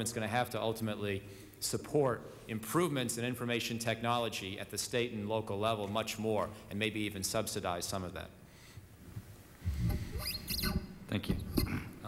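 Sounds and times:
high gliding squeaks: 0:09.8 - 0:10.9.

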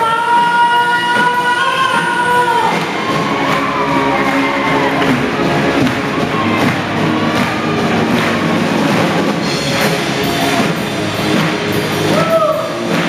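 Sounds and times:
crowd cheering: 0:00.0 - 0:13.0
live rock band: 0:00.0 - 0:13.0.

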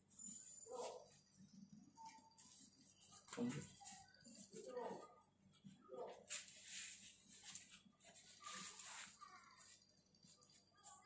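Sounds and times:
sponge scrubbing a bicycle wheel: 0:05.6 - 0:11.0.

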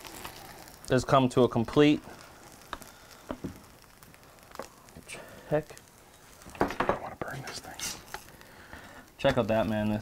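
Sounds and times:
faint frying sizzle: 0:00.0 - 0:10.0.

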